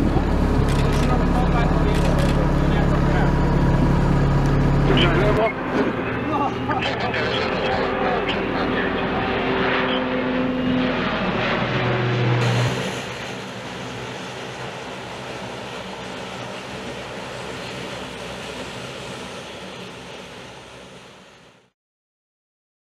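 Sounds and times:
turboprop engines humming: 0.0s - 21.7s
aircraft engines: 0.0s - 21.8s.

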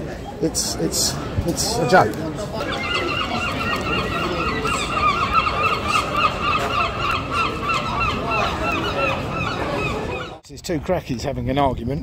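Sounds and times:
gulls calling: 1.6s - 10.4s.

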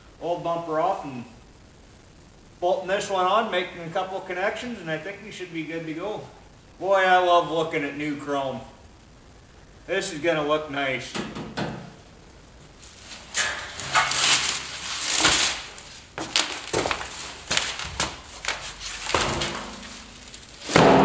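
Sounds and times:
metal knocks: 11.2s - 12.0s, 19.1s - 21.0s
plastic wrap rustling: 12.6s - 21.0s
cardboard scraping: 12.8s - 21.0s.

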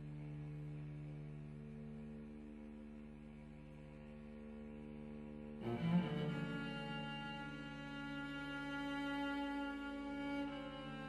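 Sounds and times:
cellos playing: 5.6s - 11.0s.

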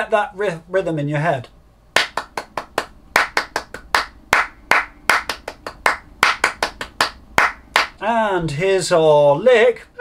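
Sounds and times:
hands clapping a rhythm: 2.0s - 8.0s.

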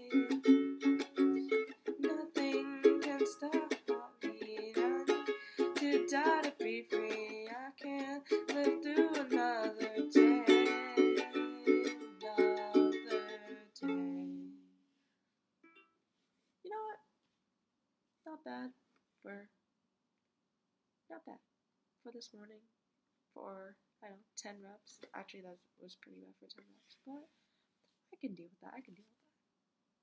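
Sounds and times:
person singing softly: 0.0s - 14.6s
ukulele strumming chords: 0.0s - 14.7s.

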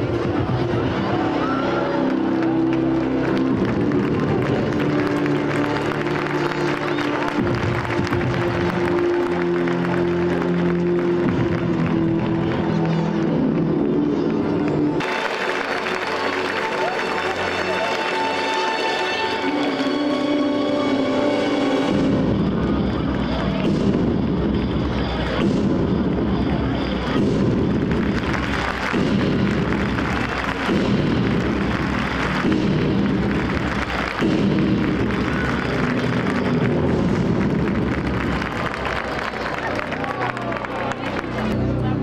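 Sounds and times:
loud music over sound system: 2.3s - 14.1s, 15.0s - 40.4s
deep booming bass beat: 23.6s - 38.7s.

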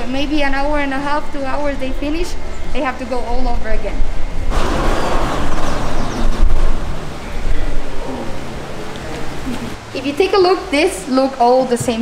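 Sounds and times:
steady low rumble: 0.0s - 9.9s.

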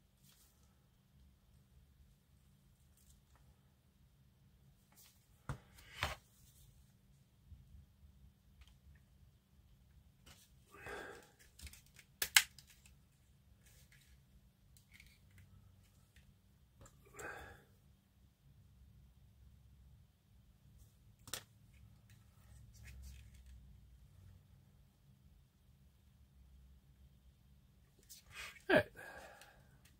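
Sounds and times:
plastic parts clicking: 11.4s - 13.0s.

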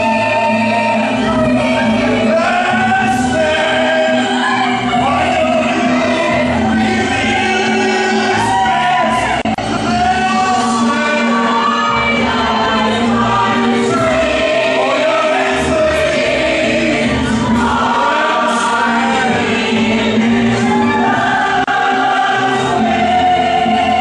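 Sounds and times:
cast singing in chorus: 0.0s - 24.0s
instrumental accompaniment: 0.0s - 24.0s.

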